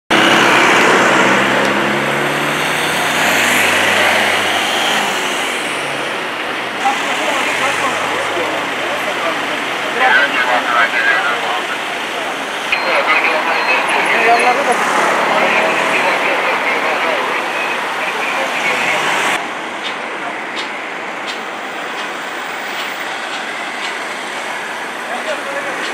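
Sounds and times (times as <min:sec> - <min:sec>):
vehicle engines running: 0:00.1 - 0:25.9
people talking: 0:00.2 - 0:20.7, 0:25.0 - 0:25.9.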